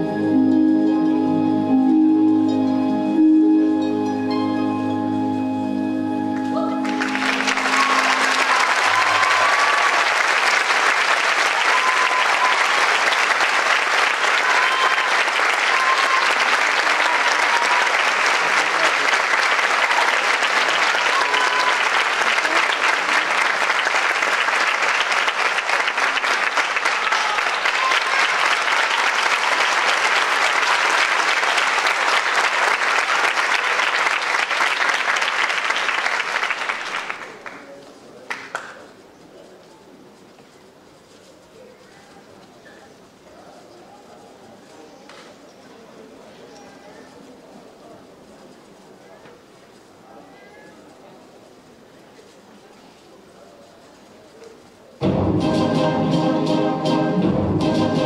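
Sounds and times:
recorded ballet music: 0:00.0 - 0:09.5, 0:55.0 - 0:58.0
audience applauding: 0:06.4 - 0:38.9.

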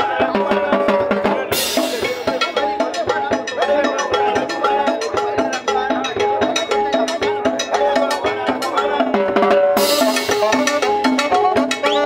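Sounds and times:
drum kit and timbales beat: 0:00.0 - 0:12.0
live band playing dance music: 0:00.0 - 0:12.0.

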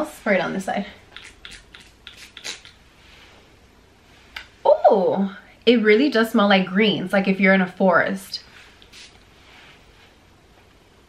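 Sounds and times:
spray pump hissing: 0:01.2 - 0:02.8, 0:08.8 - 0:09.2.

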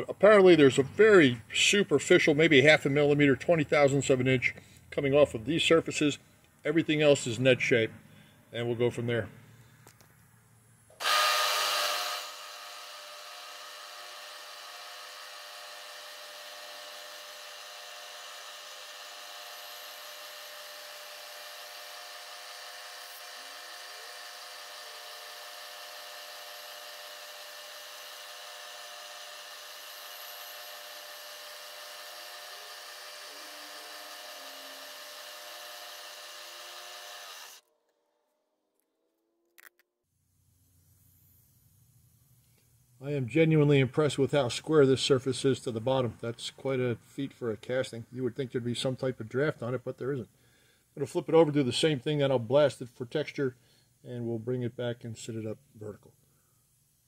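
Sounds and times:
milling machine spindle whine: 0:11.0 - 0:37.6.

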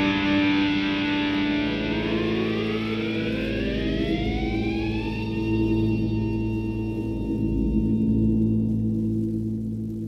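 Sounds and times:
psychedelic rock drone: 0:00.0 - 0:10.0
gliding siren-like tone: 0:01.3 - 0:08.4.

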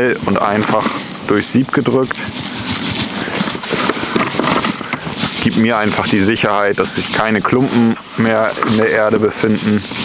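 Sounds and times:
soil scraping through a sieve: 0:00.0 - 0:10.0.

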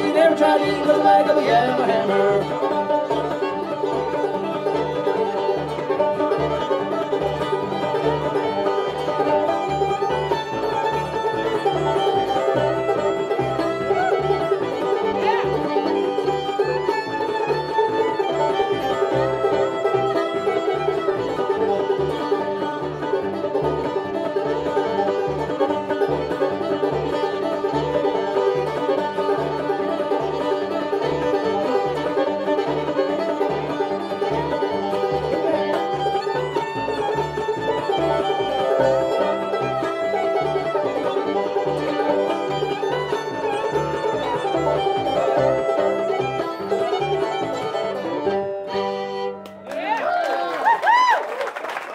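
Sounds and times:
acoustic guitar: 0:00.0 - 0:49.4
upright bass: 0:00.0 - 0:49.5
banjo: 0:00.0 - 0:49.7
fiddle: 0:00.0 - 0:49.7.

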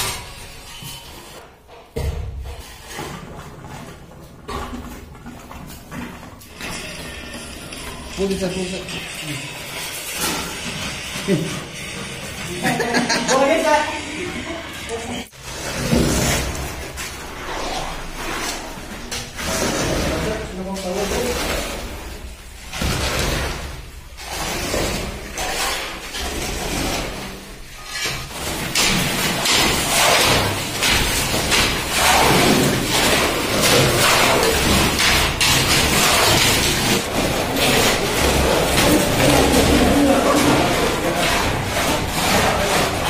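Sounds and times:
shovels scraping wet concrete: 0:02.6 - 0:43.0.

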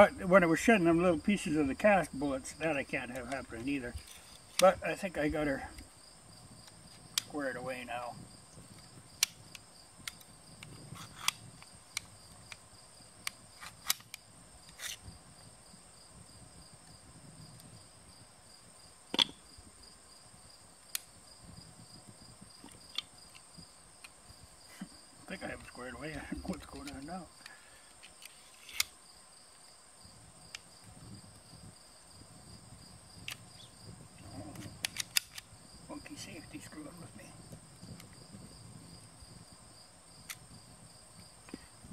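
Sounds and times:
crickets chirping: 0:00.0 - 0:41.9.

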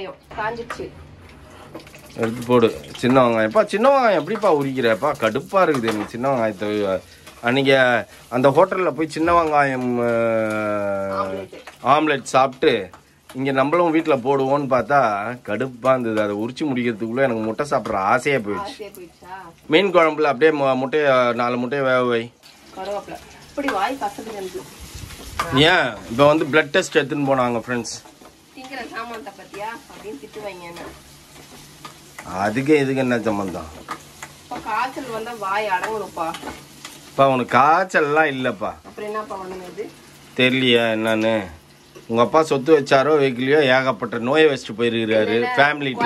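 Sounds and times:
woman's voice: 0:00.0 - 0:01.0, 0:18.5 - 0:19.5, 0:34.5 - 0:36.3, 0:45.2 - 0:46.0
food sizzling in a pan: 0:00.0 - 0:46.0
wooden spatula stirring: 0:00.8 - 0:19.0, 0:22.5 - 0:40.6
person talking: 0:45.1 - 0:46.0.

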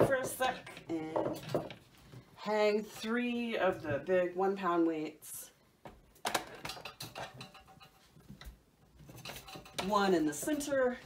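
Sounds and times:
faint metal clicks and knocks: 0:06.2 - 0:10.7.

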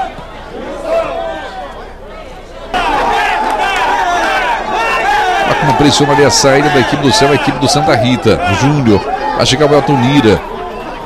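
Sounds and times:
spectators shouting: 0:00.0 - 0:02.0, 0:02.7 - 0:11.0.

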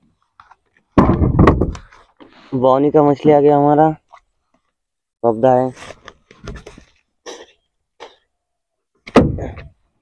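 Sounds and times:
thuds and knocks on wooden boat: 0:01.0 - 0:01.7, 0:09.1 - 0:09.7.

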